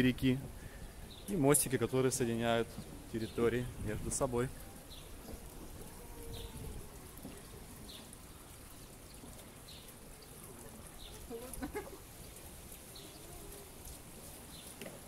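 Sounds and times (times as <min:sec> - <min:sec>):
outdoor background hiss: 0:00.0 - 0:15.0.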